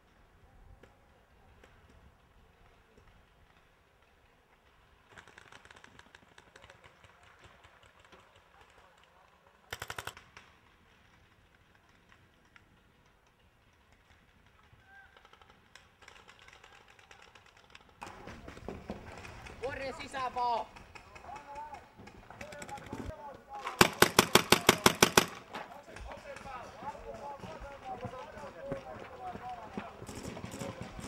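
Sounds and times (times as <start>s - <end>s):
paintball markers firing: 5.1s - 8.8s, 9.7s - 28.2s.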